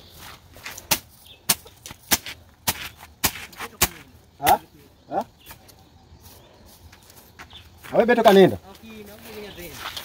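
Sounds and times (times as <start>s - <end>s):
machete slashing grass and dirt: 0.6s - 4.6s.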